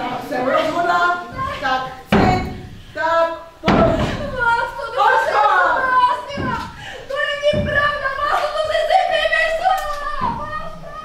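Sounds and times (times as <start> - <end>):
woman's voice: 0.0 - 11.0
heavy thumps: 1.3 - 9.1, 10.1 - 10.8.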